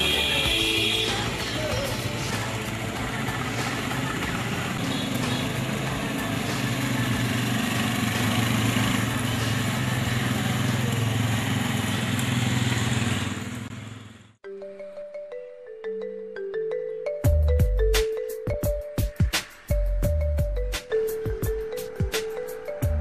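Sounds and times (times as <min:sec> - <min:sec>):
motorcycle engines droning: 0:00.0 - 0:14.4.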